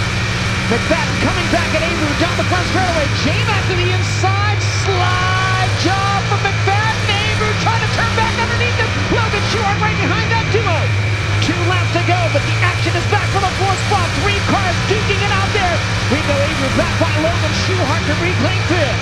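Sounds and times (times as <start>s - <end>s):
race car engine running hard: 0.0s - 19.0s.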